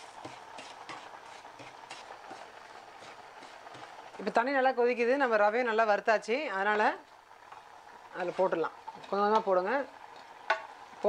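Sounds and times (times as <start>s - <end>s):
wooden spatula scraping a pan: 0.0s - 4.2s, 7.5s - 9.5s.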